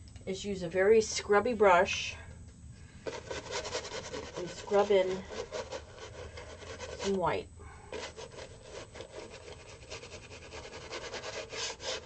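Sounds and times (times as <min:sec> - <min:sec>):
brush scrubbing on canvas: 0:03.1 - 0:12.0.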